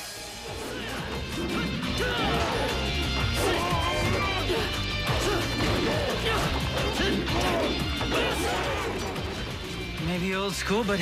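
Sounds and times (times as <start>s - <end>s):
background music: 0.0s - 11.0s
punch and kick impacts: 5.0s - 9.2s.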